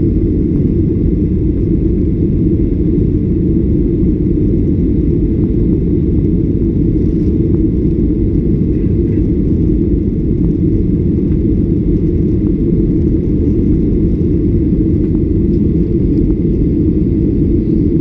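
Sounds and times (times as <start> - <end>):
jet engines rumbling in cabin: 0.0 - 18.0.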